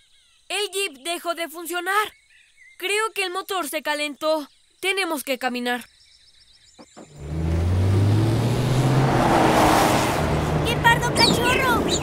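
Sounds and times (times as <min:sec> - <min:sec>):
cartoon engine speeding past: 0:07.1 - 0:12.0.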